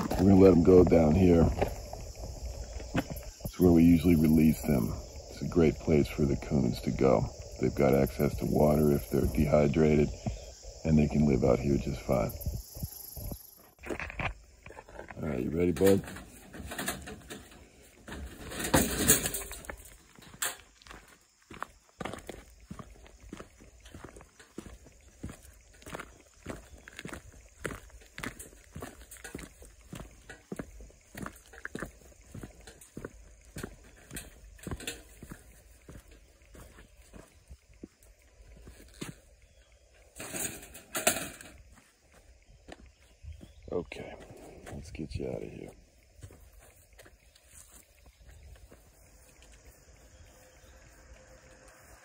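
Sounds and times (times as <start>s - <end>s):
footsteps on dirt: 0.0s - 5.7s, 6.3s - 52.0s
wire trap rustling clatter: 15.9s - 20.7s, 40.2s - 41.6s.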